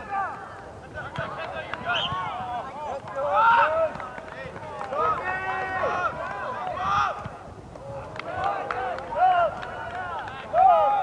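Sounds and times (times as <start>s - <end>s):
voices shouting and calling out: 0.0s - 11.0s.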